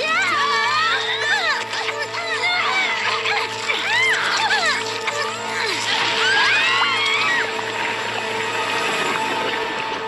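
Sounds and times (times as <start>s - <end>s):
background music with held tones: 0.0s - 10.0s.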